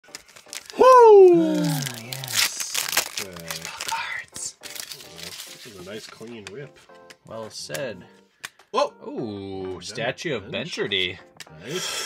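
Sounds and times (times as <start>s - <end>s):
foil wrapper tearing and crinkling: 0.0s - 6.5s.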